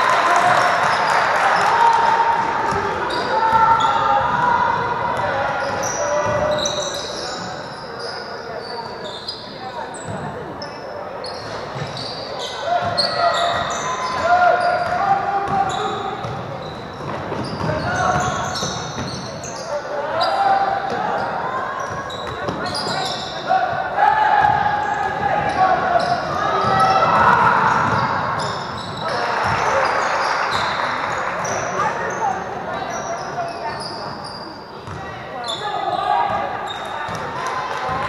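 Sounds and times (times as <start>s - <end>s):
crowd noise: 0.0s - 38.0s
sneakers squeaking: 0.7s - 38.0s
players shouting: 22.4s - 32.0s.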